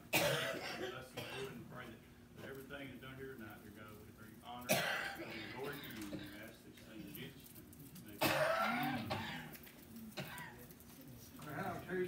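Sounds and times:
man coughing: 0.1 - 1.7, 4.7 - 6.4, 8.2 - 9.6
faint indistinct speech: 0.2 - 12.0.

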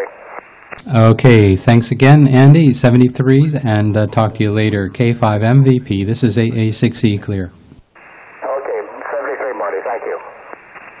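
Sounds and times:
radio receiver hiss: 0.0 - 1.6, 7.5 - 11.0
man's voice over radio: 8.4 - 10.5.

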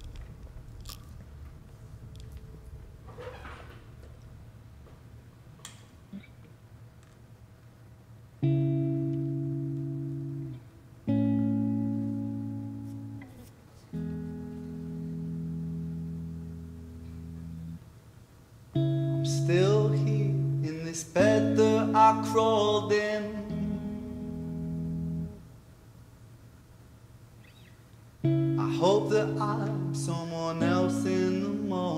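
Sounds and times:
electric guitar slow held chords: 8.4 - 17.9, 18.7 - 25.5, 28.2 - 31.9
man singing: 19.2 - 23.8, 28.6 - 31.9.

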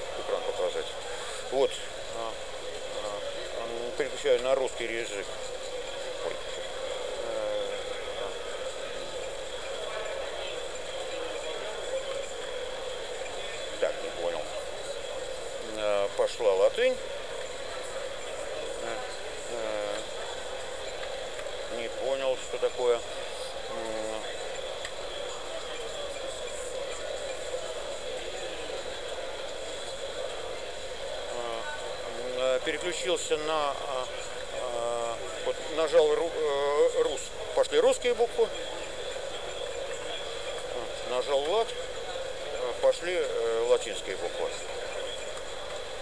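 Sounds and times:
background chatter: 0.0 - 46.0
background hum and hiss: 0.0 - 46.0
faint high-pitched whine: 0.0 - 46.0.

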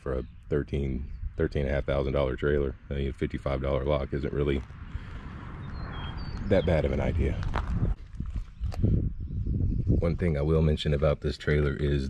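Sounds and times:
footsteps on gravel: 4.4 - 8.9.

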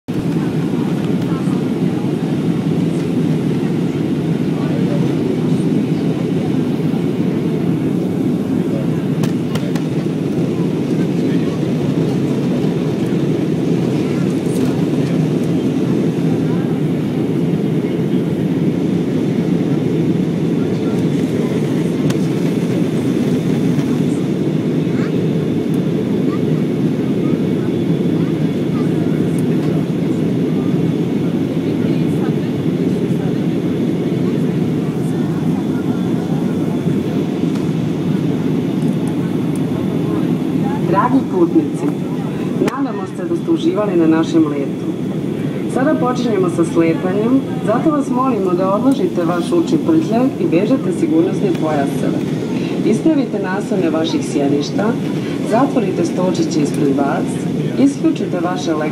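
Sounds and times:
airplane cabin engine rumble: 0.1 - 58.9.

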